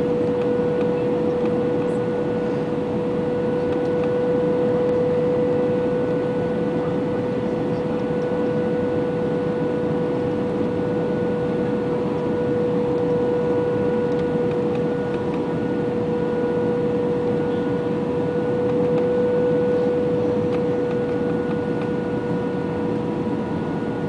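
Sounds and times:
airplane cabin engine rush: 0.0s - 24.0s
constant cabin hum: 0.0s - 24.0s.

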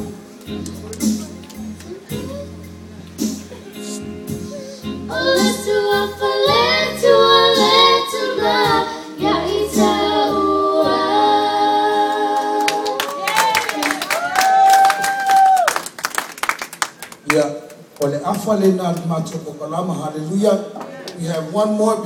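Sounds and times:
keyboard accompaniment: 0.0s - 12.8s
girls singing into microphones: 4.8s - 13.2s
people clapping: 12.1s - 19.4s.

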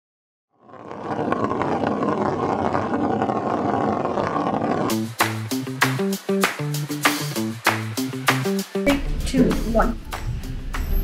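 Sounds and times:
dense steady roaring: 0.6s - 5.6s
upbeat music with percussive hits: 4.9s - 11.0s.

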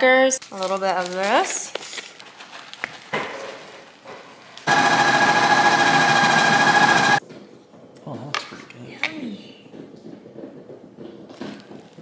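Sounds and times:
ice cream maker motor whine: 4.7s - 7.2s.

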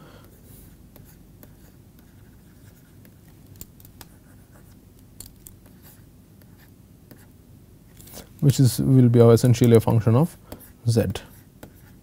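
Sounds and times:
stylus tapping and scratching: 0.9s - 7.3s, 9.4s - 12.0s.

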